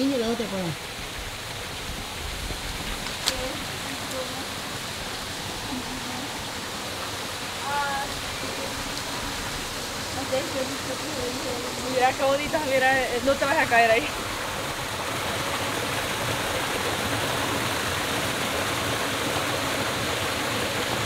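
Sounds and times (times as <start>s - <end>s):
small waterfall rushing: 0.0s - 21.0s.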